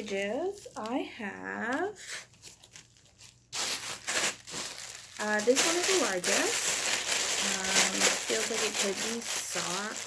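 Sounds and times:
plastic mailer crinkling: 2.2s - 10.0s.

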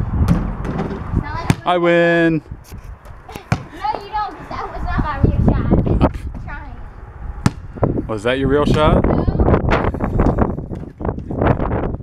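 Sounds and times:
basketball bouncing on concrete: 0.2s - 1.8s, 3.0s - 4.1s, 7.4s - 7.8s.

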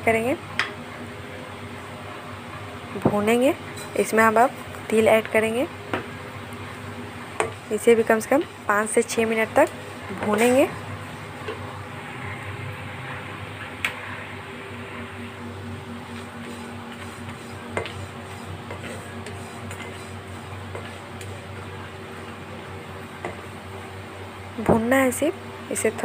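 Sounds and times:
low steady hum: 0.0s - 26.0s
spatula scraping seeds in pan: 16.1s - 22.3s.

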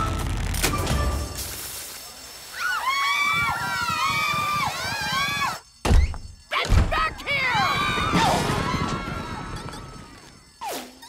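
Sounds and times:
cartoon voices whooping and cheering: 2.5s - 5.6s, 6.6s - 10.2s
startled yells: 6.5s - 9.5s.

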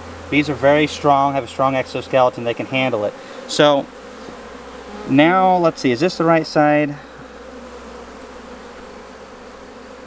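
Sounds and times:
honeybees humming: 0.0s - 10.0s.

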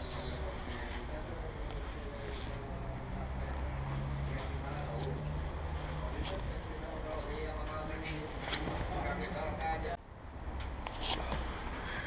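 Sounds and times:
faint voices talking: 0.0s - 10.0s.

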